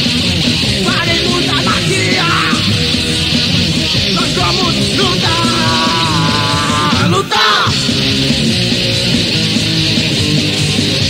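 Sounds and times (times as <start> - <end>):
bass guitar: 0.0 - 11.0
distorted electric guitar: 0.0 - 11.0
drums: 0.0 - 11.0
shouted vocal: 0.8 - 2.7, 4.2 - 7.9.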